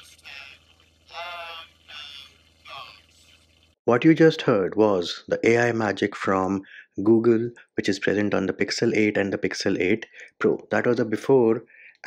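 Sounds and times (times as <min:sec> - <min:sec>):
faint voice speaking: 0:00.0 - 0:03.0
steady low hum: 0:00.0 - 0:03.7.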